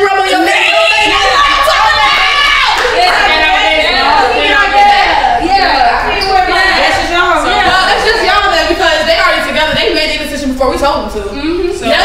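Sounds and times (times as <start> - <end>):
loud voices speaking: 0.0 - 12.0.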